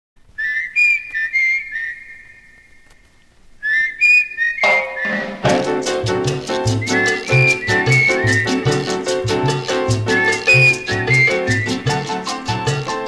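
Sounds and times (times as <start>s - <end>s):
high whistle phrase: 0.4s - 2.5s, 3.6s - 5.5s, 6.6s - 8.8s, 10.1s - 12.0s
latin dance band: 4.5s - 13.0s.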